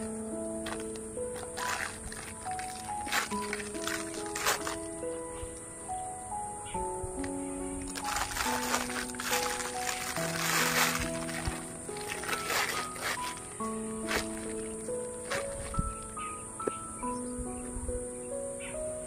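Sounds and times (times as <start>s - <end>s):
slow background music: 0.0s - 19.0s
plastic bag crinkling: 0.6s - 5.0s, 7.8s - 16.2s.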